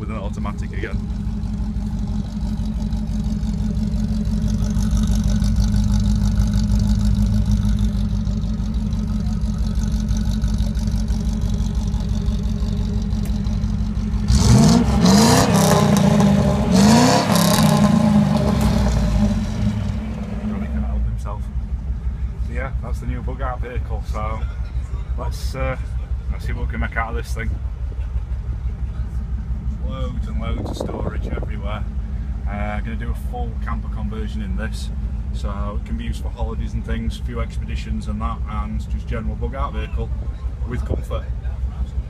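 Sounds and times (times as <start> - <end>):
engine idling and revving: 0.0 - 42.0.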